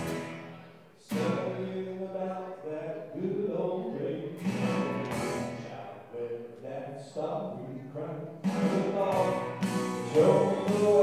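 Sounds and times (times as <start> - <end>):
violin and guitars playing: 0.0 - 1.6, 4.4 - 5.8, 8.5 - 11.0.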